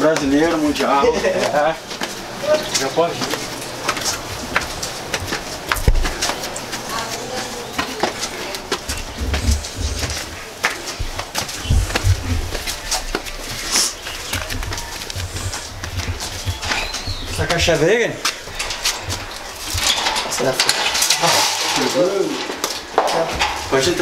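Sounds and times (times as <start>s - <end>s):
flip-flop footsteps on concrete steps: 0.0s - 21.2s
low bumps: 0.0s - 24.0s.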